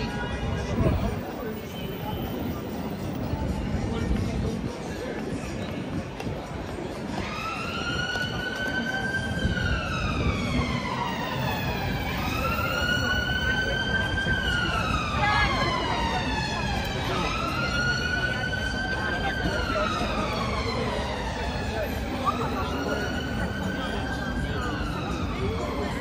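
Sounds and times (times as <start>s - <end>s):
crowd chatter: 0.0s - 26.0s
emergency vehicle siren wailing: 6.9s - 26.0s.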